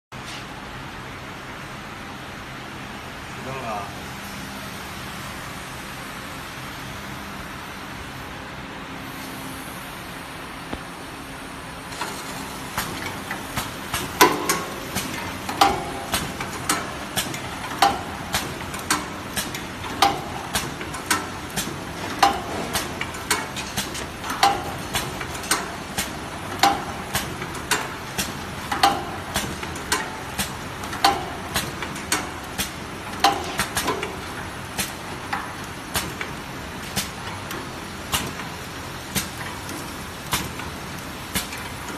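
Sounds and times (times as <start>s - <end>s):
wrapping machine humming: 0.8s - 41.9s
machine clicking and clacking: 11.9s - 41.9s.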